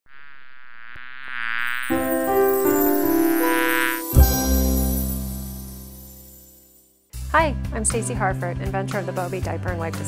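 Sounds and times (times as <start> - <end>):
cartoon bee buzzing: 0.1 - 5.7
jingle: 1.8 - 7.0.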